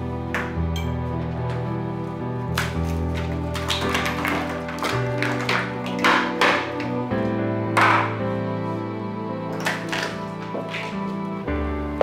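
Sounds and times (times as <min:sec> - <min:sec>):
ice cubes cracking out of tray: 0:02.6 - 0:07.0.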